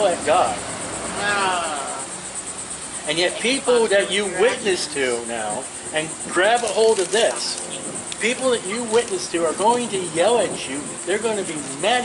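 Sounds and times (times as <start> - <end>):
fast high-pitched pulsing chirp: 1.9 - 6.4.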